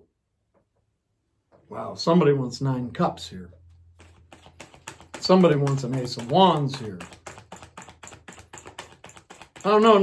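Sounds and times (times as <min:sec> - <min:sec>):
cards shuffling with soft clicks: 0:03.6 - 0:10.0.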